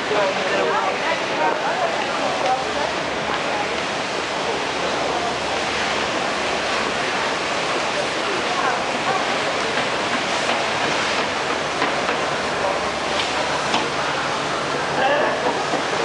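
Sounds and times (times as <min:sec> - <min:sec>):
city street noise: 0:00.0 - 0:16.0
indistinct voices of passers-by: 0:00.0 - 0:16.0.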